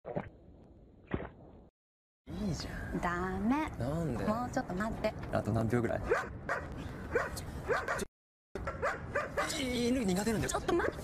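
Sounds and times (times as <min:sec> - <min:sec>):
dog barking and yipping: 0:06.0 - 0:09.6.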